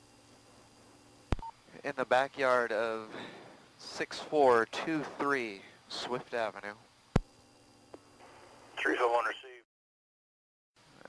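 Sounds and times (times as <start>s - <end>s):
faint steady hum: 0.0s - 9.6s
voice over radio: 8.8s - 9.6s.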